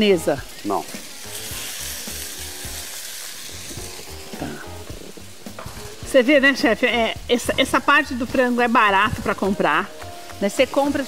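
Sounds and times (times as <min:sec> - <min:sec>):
chicken and bacon sizzling: 0:00.0 - 0:11.0.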